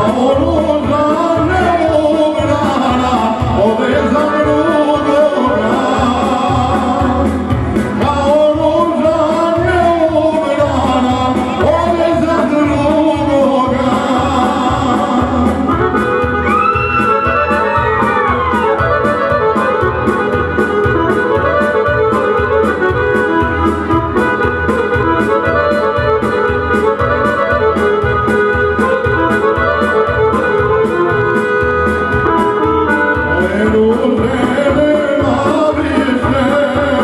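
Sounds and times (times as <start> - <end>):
organ-like keyboard melody: 0.0 - 37.0.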